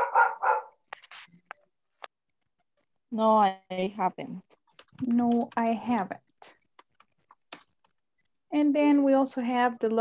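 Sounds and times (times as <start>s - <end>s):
dog barking: 0.0s - 0.8s.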